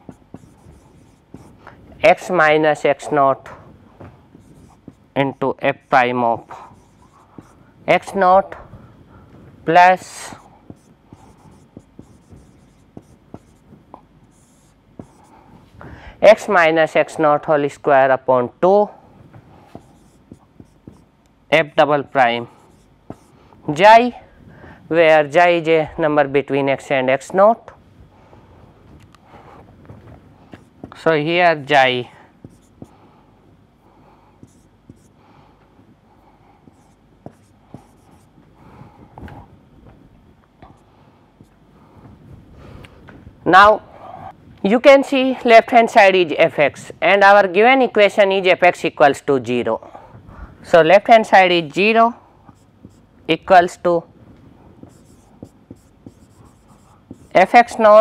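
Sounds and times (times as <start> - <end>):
pen tapping on whiteboard: 0.0 - 1.6, 10.7 - 13.6, 14.3 - 15.3, 36.7 - 38.2, 54.8 - 57.4
marker writing on whiteboard: 0.0 - 8.6, 9.7 - 15.6, 19.4 - 21.2, 22.2 - 23.8, 30.4 - 33.1, 34.4 - 35.2, 35.8 - 39.5, 52.5 - 53.1, 54.8 - 58.0.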